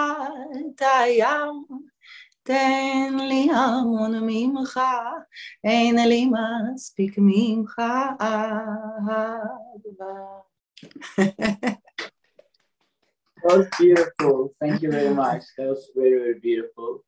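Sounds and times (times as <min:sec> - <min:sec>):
woman singing unaccompanied: 0:00.0 - 0:10.4, 0:11.0 - 0:11.7, 0:14.7 - 0:15.4
short sharp sounds: 0:13.4 - 0:16.7.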